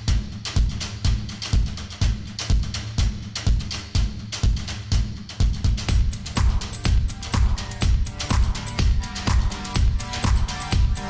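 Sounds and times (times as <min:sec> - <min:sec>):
music with drum beat and bass: 0:00.0 - 0:11.0.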